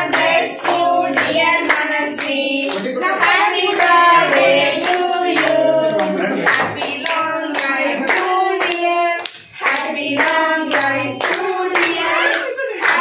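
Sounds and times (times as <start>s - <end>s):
group clapping in time: 0.0s - 13.0s
group singing a celebration song: 0.0s - 13.0s.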